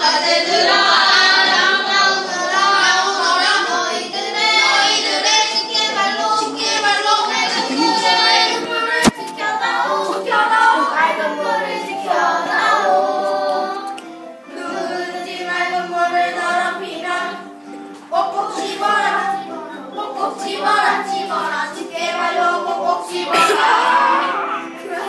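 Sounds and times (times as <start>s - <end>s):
children singing: 0.0s - 25.0s
sharp click: 9.0s - 9.3s.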